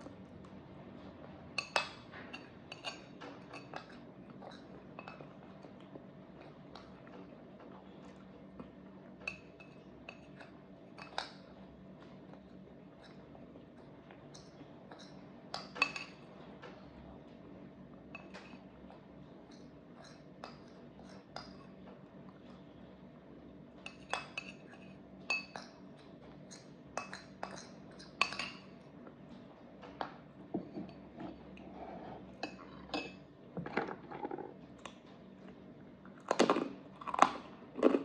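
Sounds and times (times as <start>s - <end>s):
metal spoon clinking on ceramic bowl: 27.0s - 28.7s.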